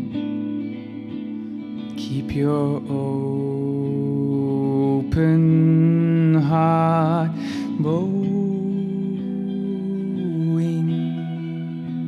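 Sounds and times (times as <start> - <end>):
electric guitar: 0.0 - 12.0.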